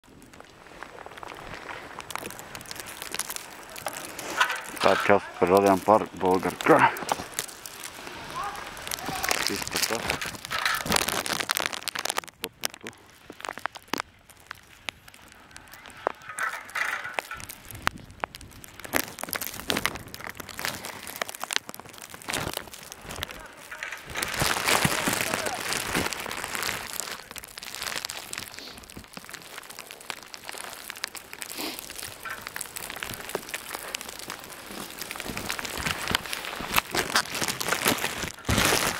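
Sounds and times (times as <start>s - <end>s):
skis crunching over snow: 0.0s - 38.9s
sharp clicks and scrapes: 0.4s - 38.9s.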